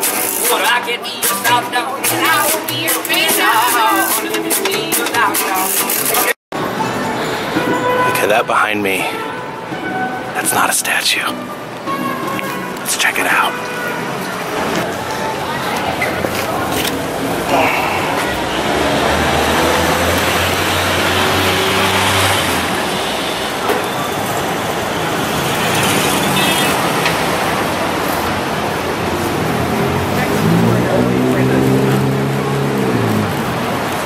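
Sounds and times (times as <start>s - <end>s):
road noise from passing cars: 0.0s - 34.0s
vehicle driving past: 16.5s - 34.0s.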